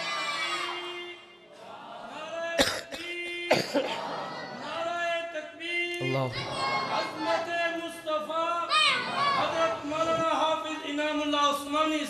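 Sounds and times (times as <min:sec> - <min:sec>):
man coughing: 0:02.6 - 0:04.0.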